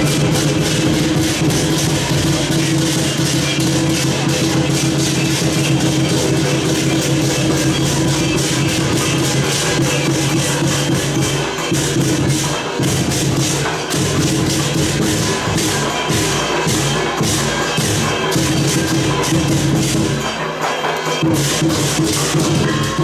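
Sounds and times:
cymbals crashing: 0.0s - 23.0s
drum beating: 0.0s - 23.0s.

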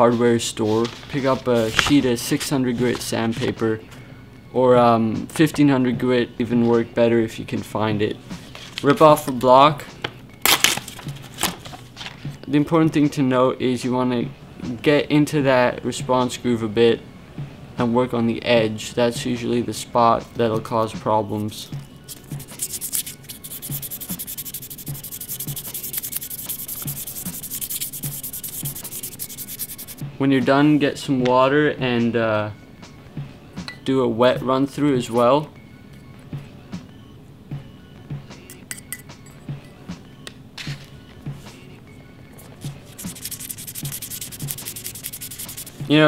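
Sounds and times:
sandpaper scratching: 22.1s - 30.0s, 42.9s - 45.8s.

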